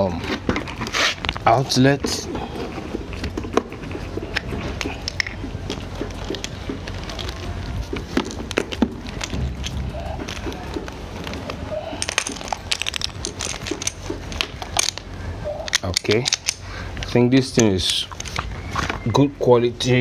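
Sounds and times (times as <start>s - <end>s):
hose fittings clicking and rattling: 3.2s - 18.4s.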